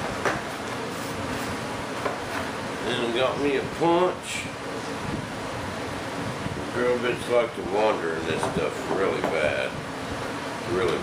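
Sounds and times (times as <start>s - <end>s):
workshop background hiss: 0.0s - 11.0s.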